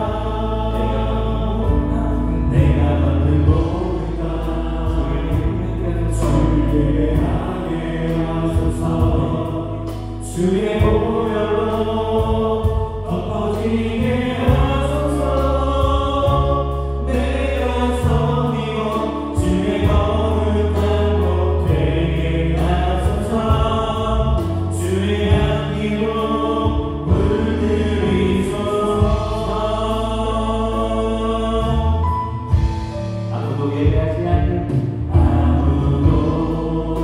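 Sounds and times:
choir-like voices: 0:00.0 - 0:37.0
worship band playing: 0:00.0 - 0:37.0.

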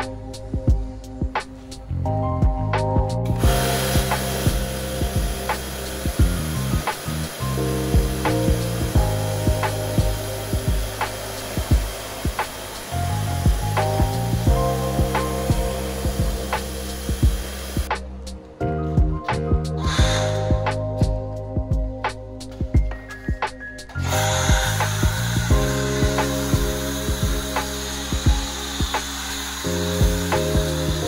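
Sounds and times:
background music with steady beat: 0:00.0 - 0:31.0
pressure washer spraying water: 0:03.3 - 0:18.0, 0:19.8 - 0:20.8, 0:24.0 - 0:31.0.

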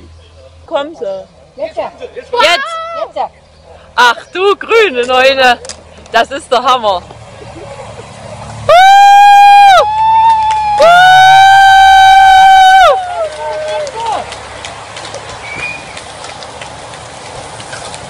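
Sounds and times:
spectators whooping: 0:08.7 - 0:14.3.

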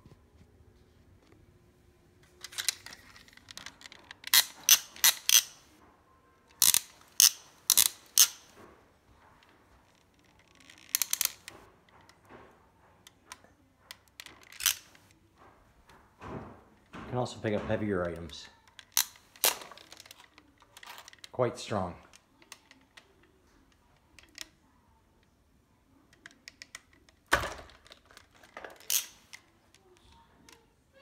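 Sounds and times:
plastic toy grabber clacking: 0:02.4 - 0:05.6, 0:06.5 - 0:08.5, 0:10.1 - 0:11.5, 0:13.9 - 0:15.0, 0:18.0 - 0:21.3, 0:26.1 - 0:29.5.

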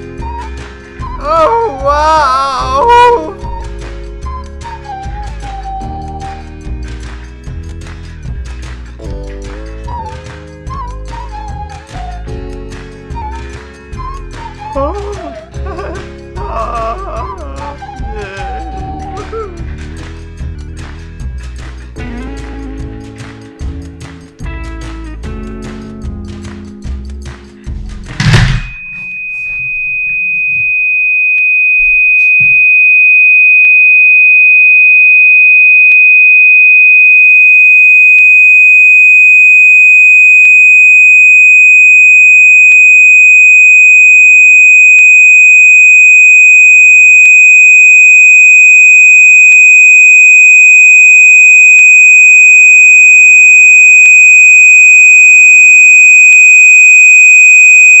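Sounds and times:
high-pitched test tone: 0:01.2 - 0:03.5, 0:28.2 - 0:58.0.

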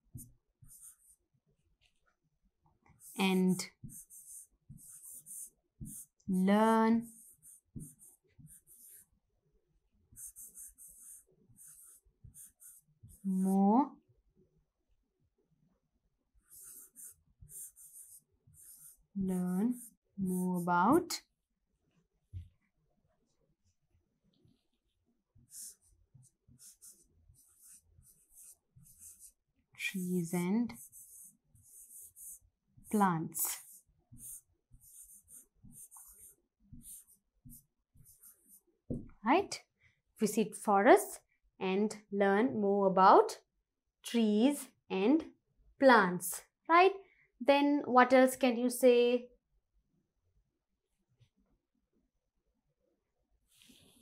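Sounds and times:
stylus scratching on screen: 0:00.2 - 0:01.2, 0:03.0 - 0:09.1, 0:10.1 - 0:13.6, 0:16.4 - 0:21.1, 0:25.4 - 0:38.7
woman's voice: 0:03.2 - 0:03.6, 0:06.3 - 0:07.1, 0:13.3 - 0:13.9, 0:19.2 - 0:21.2, 0:29.8 - 0:30.8, 0:32.9 - 0:33.6, 0:39.3 - 0:39.6, 0:40.2 - 0:43.4, 0:44.1 - 0:49.3.

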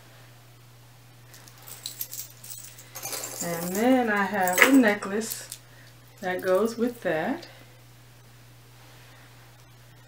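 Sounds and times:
metal chain jewelry clinking: 0:01.3 - 0:05.6.

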